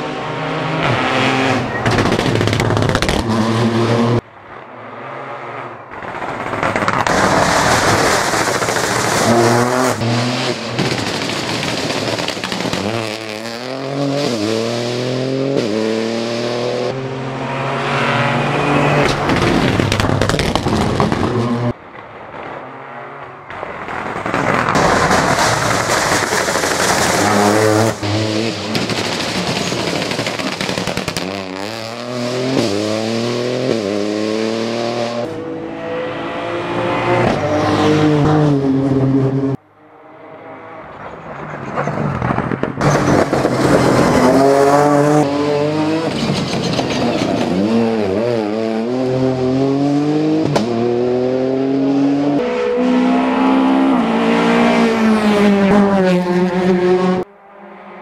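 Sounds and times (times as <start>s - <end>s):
rally car engine at full throttle: 0.0s - 58.0s.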